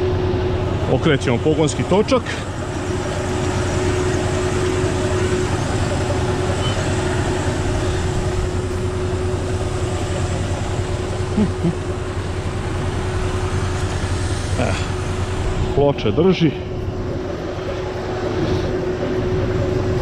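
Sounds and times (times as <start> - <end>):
tractor engine running: 0.0 - 20.0
vacuum fan whine: 0.0 - 20.0.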